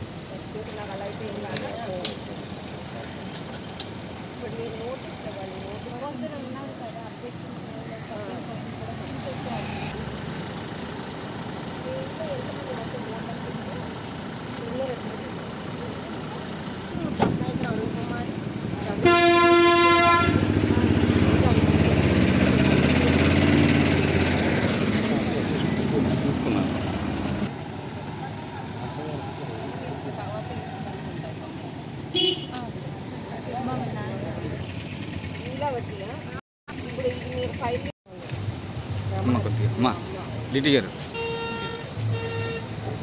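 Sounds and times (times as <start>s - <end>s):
motor vehicle running: 0.0s - 43.0s
vehicle horn toot: 19.0s - 20.5s, 32.1s - 32.6s, 41.1s - 42.8s.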